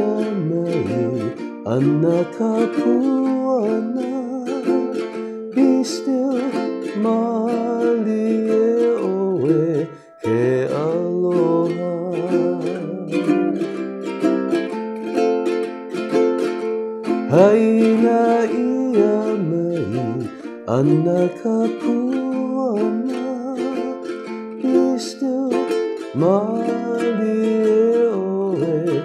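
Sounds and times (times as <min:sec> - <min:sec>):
ukulele strumming chords: 0:00.0 - 0:29.0.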